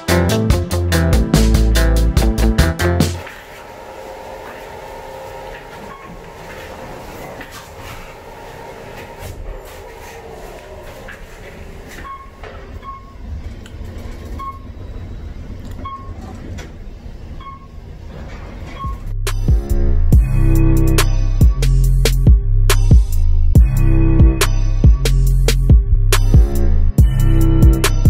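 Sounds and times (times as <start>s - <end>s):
elevator running with rumble: 3.7s - 24.4s.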